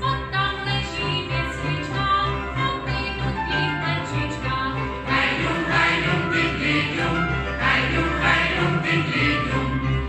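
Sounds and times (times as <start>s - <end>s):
violins playing: 0.5s - 10.0s
men and women singing folk song: 5.0s - 10.0s.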